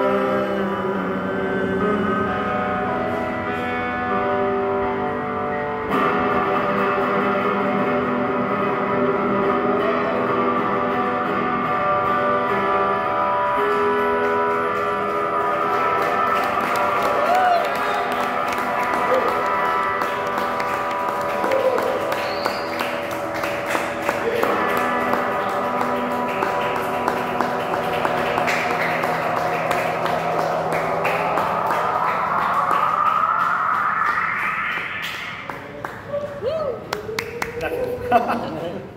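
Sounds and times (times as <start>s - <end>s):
looped electric guitar chords: 0.0s - 36.9s
rising pitch sweep: 14.1s - 37.4s.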